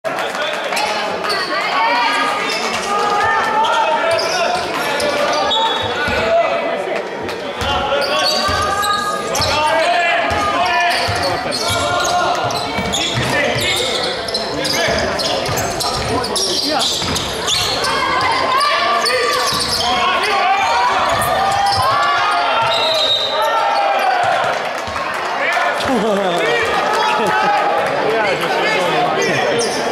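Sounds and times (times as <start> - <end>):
spectators chattering: 0.1 - 29.9.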